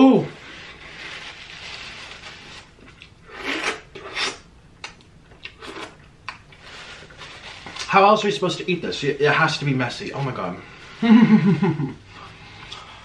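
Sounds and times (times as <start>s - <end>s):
paper napkin rustling: 0.1s - 2.8s.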